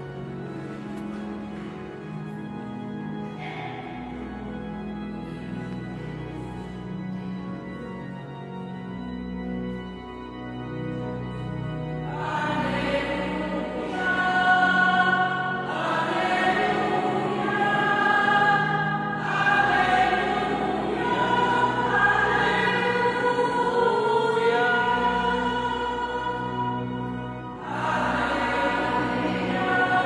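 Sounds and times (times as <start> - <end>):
keyboard accompaniment: 0.0 - 30.0
choir singing a hymn: 11.2 - 30.0.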